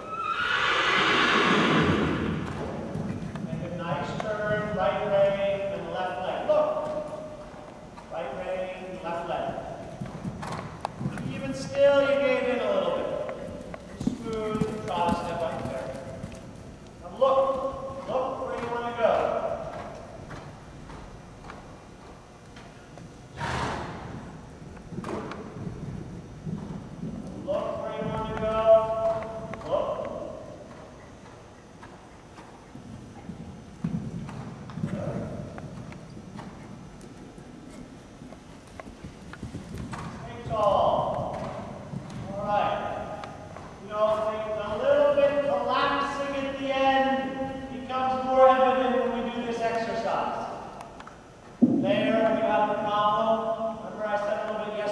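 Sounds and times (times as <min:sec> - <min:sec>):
horse whinnying: 0:00.0 - 0:02.4, 0:23.3 - 0:24.0.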